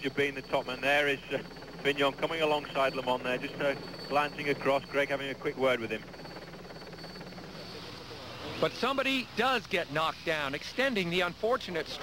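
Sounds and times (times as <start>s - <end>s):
engine drone: 0.0s - 12.0s.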